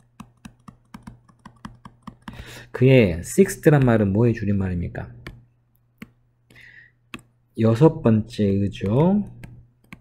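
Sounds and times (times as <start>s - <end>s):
stylus tapping on tablet screen: 0.0s - 2.5s, 3.7s - 4.2s, 5.2s - 7.4s, 8.4s - 10.0s
low steady hum: 0.0s - 10.0s.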